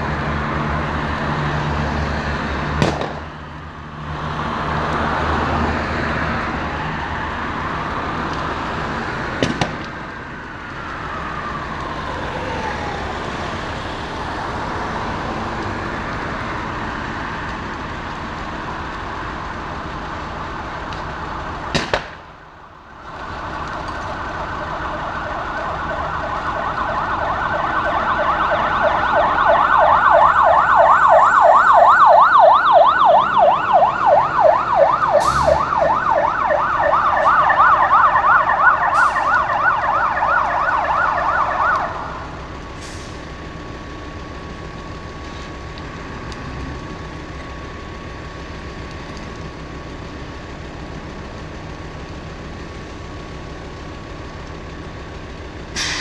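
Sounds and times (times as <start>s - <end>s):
emergency siren yelping: 4.8s - 21.7s, 22.6s - 55.4s.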